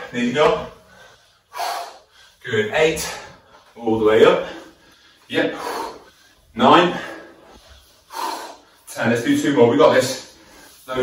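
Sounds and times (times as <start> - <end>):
man breathing sharply: 0.7 - 2.4, 4.4 - 8.9.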